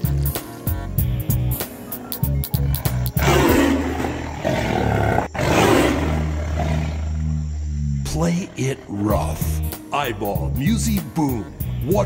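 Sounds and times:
lion roaring: 3.2s - 9.6s
steady low hum: 5.1s - 9.7s.

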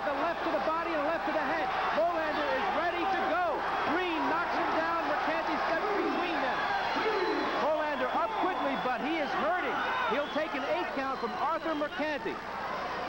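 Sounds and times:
man commentating: 0.0s - 12.4s.

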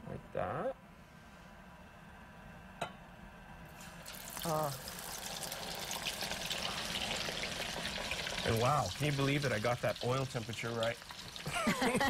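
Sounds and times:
food sizzling in hot oil: 3.7s - 12.0s.

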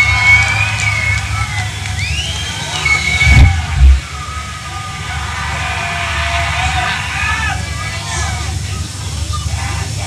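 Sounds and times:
fast drumming: 3.2s - 4.0s
heavy low hits: 3.2s - 4.0s.

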